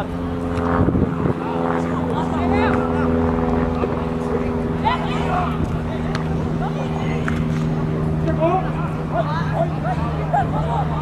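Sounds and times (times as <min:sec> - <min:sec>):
engine idling hum: 0:00.0 - 0:11.0.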